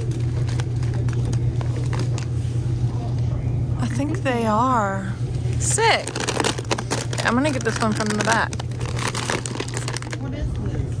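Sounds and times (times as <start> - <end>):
store background hum: 0.0 - 11.0
plastic bags rustling: 5.7 - 10.4.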